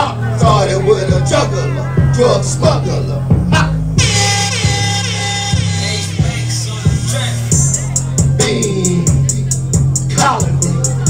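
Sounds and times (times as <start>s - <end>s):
hip-hop beat over loudspeakers: 0.0s - 11.0s.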